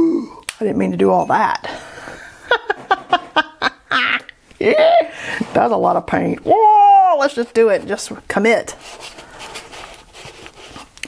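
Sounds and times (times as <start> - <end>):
scraper dragging paint across paper: 5.4 - 5.9, 8.7 - 11.0.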